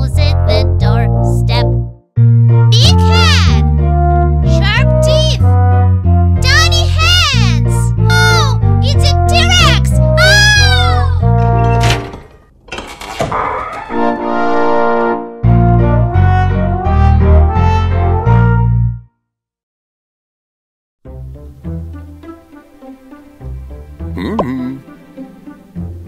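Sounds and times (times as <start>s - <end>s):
bouncy cartoon music: 0.0s - 12.1s, 13.8s - 19.0s, 23.9s - 25.2s
high-pitched cartoon voices: 24.2s - 24.8s.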